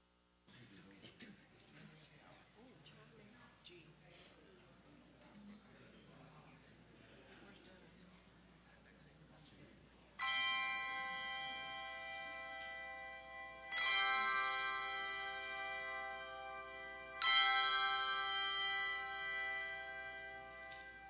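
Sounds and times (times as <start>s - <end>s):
handbell chords ringing: 10.2s - 21.0s.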